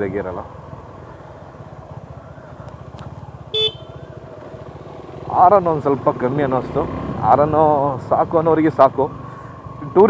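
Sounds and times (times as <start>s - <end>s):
motorcycle engine running: 0.0s - 10.0s
vehicle horn toot: 3.5s - 4.1s.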